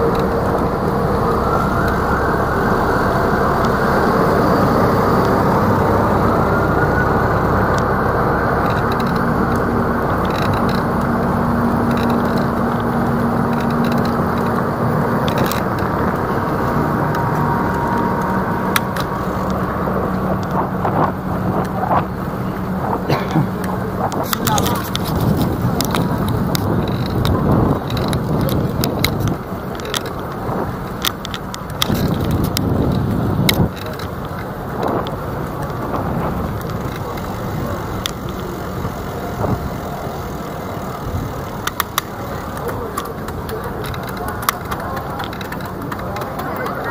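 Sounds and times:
passers-by talking: 0.0s - 46.9s
traffic noise: 0.0s - 46.9s
vehicle engine hum: 0.0s - 46.9s.

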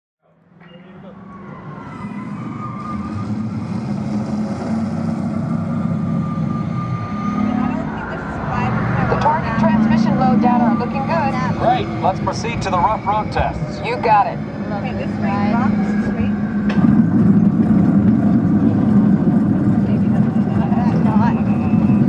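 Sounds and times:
ride vehicle rolling on track: 0.6s - 22.0s.

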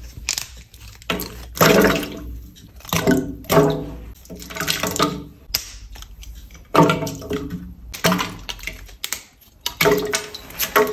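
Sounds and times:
wax pieces clicking and tapping: 7.9s - 9.8s.

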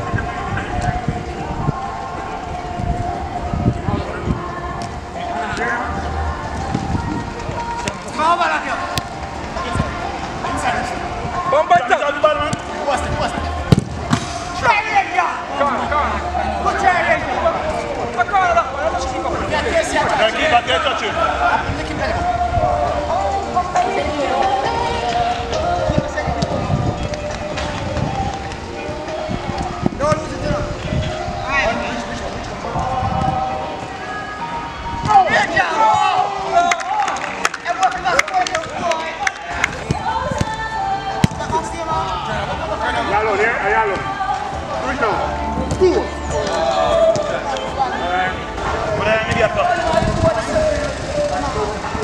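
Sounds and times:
players shouting: 4.8s - 52.0s
football kicks on turf: 13.7s - 14.4s.

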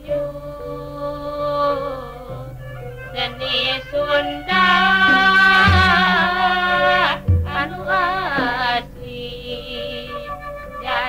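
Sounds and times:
gamelan music: 0.0s - 11.0s
woman singing: 0.0s - 11.0s.

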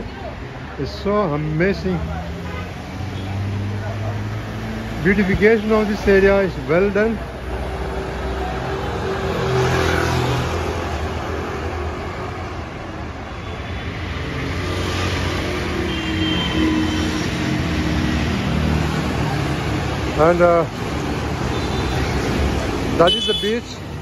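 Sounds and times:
road traffic passing: 0.0s - 24.0s.

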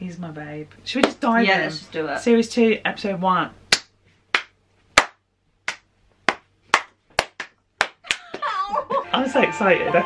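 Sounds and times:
hand claps: 3.7s - 8.5s.

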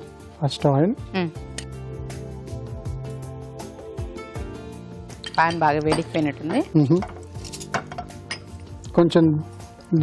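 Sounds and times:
soft background music: 0.0s - 10.0s
cookware and utensils clinking: 5.2s - 9.0s.

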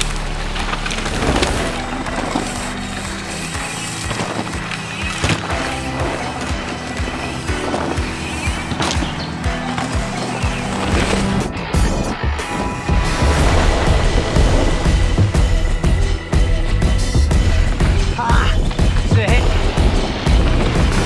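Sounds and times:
bike tyres rolling on dirt: 0.0s - 16.1s
music with bass: 0.0s - 21.0s
bike rattles and knocks: 0.6s - 12.0s.

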